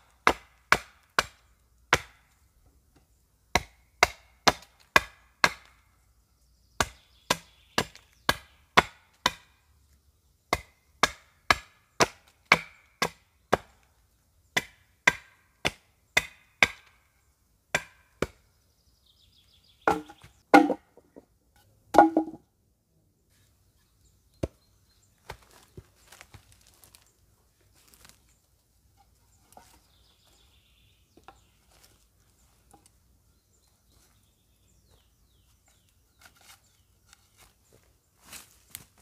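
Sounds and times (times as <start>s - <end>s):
hatchet chopping wood: 0.1s - 2.3s, 3.5s - 5.8s, 6.8s - 9.6s, 10.5s - 13.8s, 14.6s - 17.0s, 17.7s - 18.4s, 19.9s - 20.9s, 21.9s - 22.4s
dull wooden knocks: 19.9s - 21.3s, 21.9s - 22.4s.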